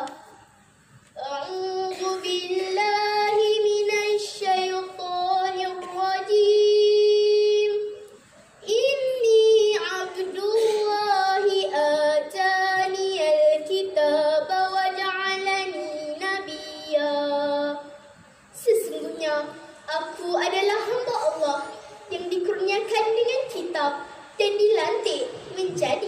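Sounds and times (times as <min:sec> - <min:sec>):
girl reciting melodically: 0:00.0 - 0:26.0.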